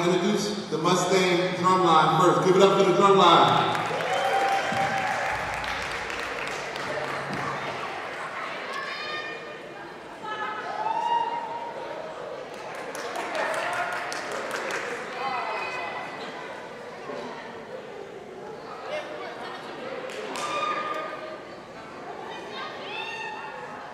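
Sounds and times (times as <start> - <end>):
audience clapping in hall: 3.4 - 8.4, 12.5 - 15.3
cheering shouts and whoops: 3.8 - 5.9, 10.6 - 11.9.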